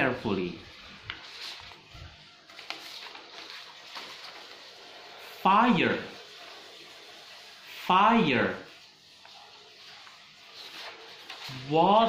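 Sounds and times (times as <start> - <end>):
paper rustling: 0.0 - 12.0.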